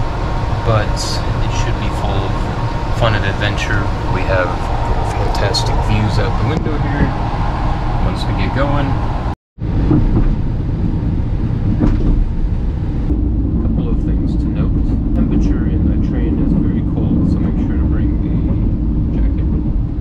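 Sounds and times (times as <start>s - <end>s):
train carriage rumble: 0.0s - 20.0s
faint background voices: 0.7s - 7.1s, 13.6s - 19.5s.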